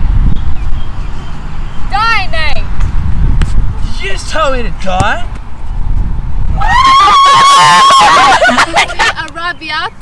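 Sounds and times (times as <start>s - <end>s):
people shouting and cheering: 6.5s - 8.6s
girl screaming: 6.6s - 8.5s.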